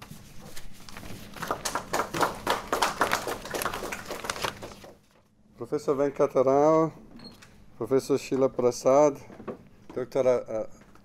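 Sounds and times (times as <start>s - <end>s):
applause in a hall: 1.3s - 4.9s.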